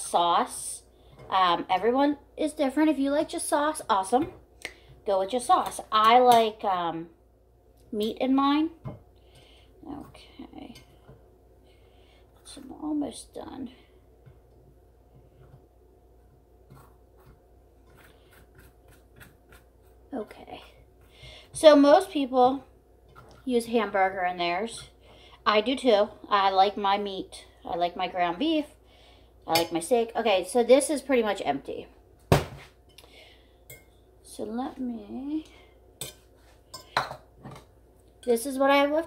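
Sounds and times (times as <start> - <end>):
fork scraping squash: 16.7 - 20.2.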